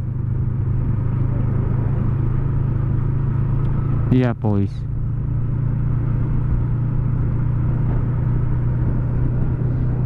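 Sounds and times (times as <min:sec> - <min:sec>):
motorcycle engine running: 0:00.0 - 0:10.0
road and wind noise: 0:00.0 - 0:10.0.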